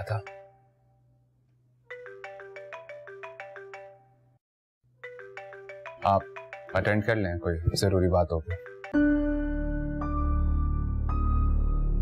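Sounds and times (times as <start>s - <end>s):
mobile phone ringtone melody: 1.9s - 4.4s, 5.0s - 7.9s, 8.5s - 9.3s.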